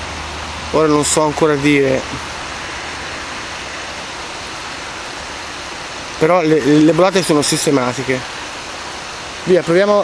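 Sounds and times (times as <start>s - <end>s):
river water flowing over stones: 0.0s - 10.0s.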